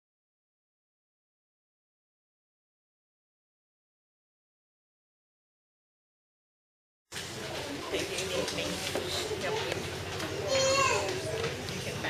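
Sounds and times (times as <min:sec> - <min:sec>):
children chattering: 0:07.2 - 0:12.0
child's voice rising above: 0:10.4 - 0:11.2.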